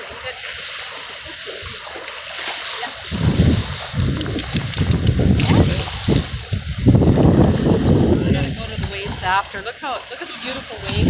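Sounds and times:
wind buffeting microphone: 2.9s - 9.8s, 10.4s - 11.0s.

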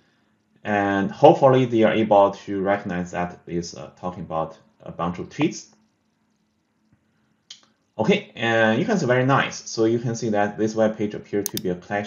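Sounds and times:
sharp click: 11.4s - 11.7s.

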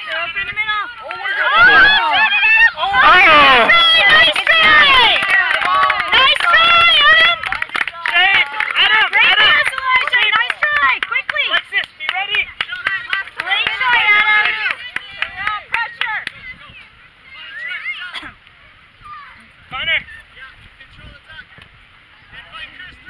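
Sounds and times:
spectators shouting and cheering: 0.0s - 18.2s
hand claps: 3.7s - 16.4s.

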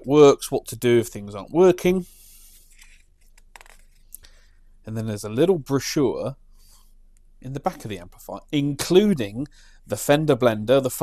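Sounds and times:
paper pages rustling: 2.5s - 4.1s.

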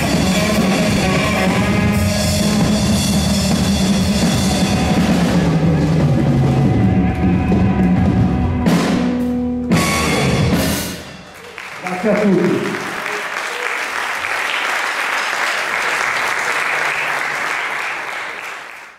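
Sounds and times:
electric guitar: 0.0s - 10.8s
bass guitar: 0.0s - 11.2s
drum kit: 0.0s - 11.4s.

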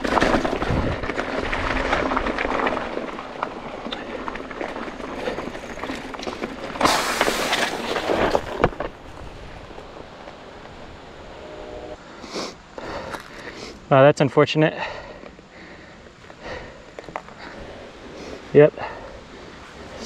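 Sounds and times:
bike tyres rattling over rocks: 0.0s - 11.3s.

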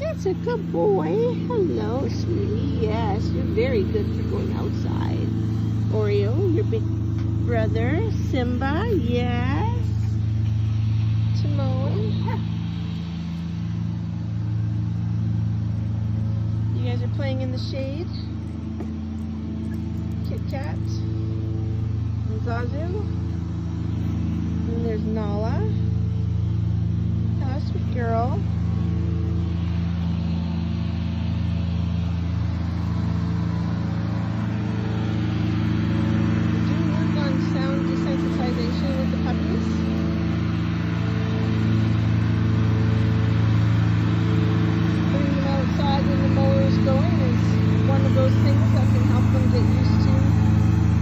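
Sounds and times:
lawn mower engine running: 0.0s - 51.0s.

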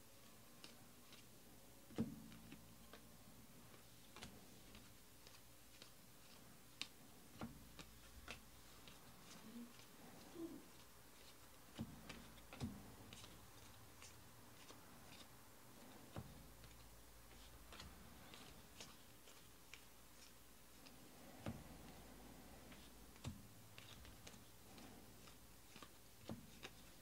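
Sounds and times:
cards being flipped by hand: 0.2s - 1.3s, 1.9s - 27.0s.

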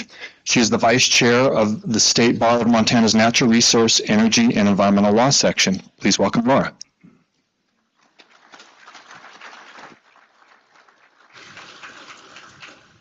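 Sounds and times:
light applause: 8.0s - 13.0s.

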